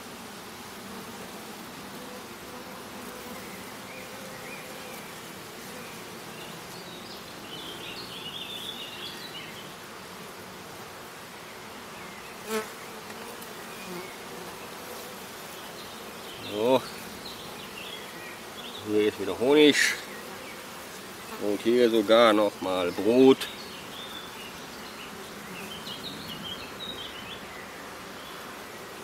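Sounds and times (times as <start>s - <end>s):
honeybee colony humming: 0.0s - 29.0s.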